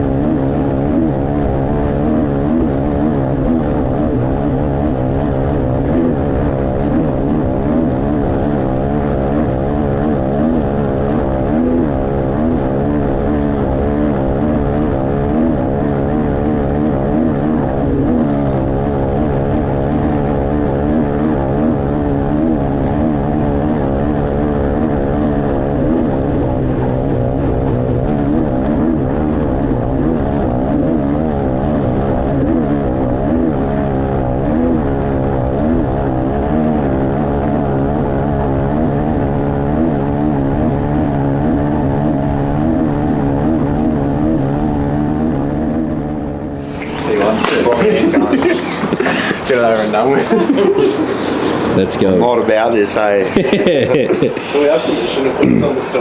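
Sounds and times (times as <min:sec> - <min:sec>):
dirt bike engine running hard: 0:00.0 - 0:56.0.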